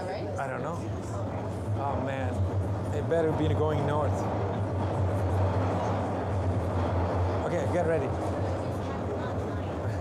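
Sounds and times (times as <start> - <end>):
subway train rumbling in tunnel: 0.8 - 10.0.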